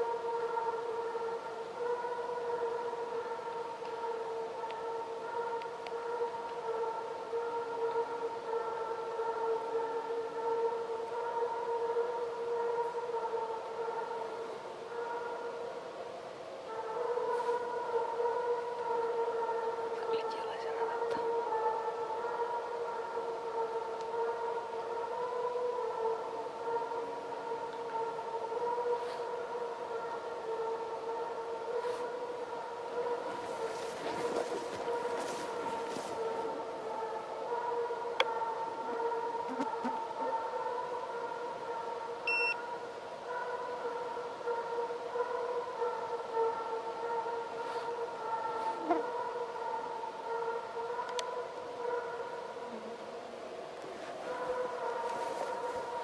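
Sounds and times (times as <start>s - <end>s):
distant hounds howling: 0.0s - 56.0s.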